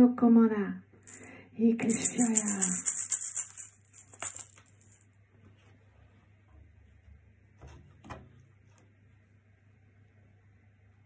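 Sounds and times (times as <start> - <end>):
hand rattle shaken: 1.1 - 5.0.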